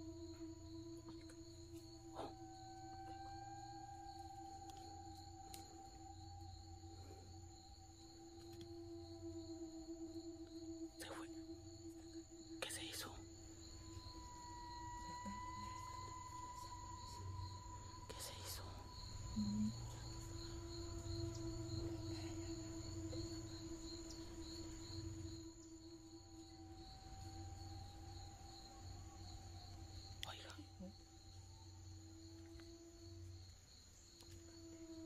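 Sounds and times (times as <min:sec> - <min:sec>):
eerie suspense drone: 0:00.0 - 0:35.0.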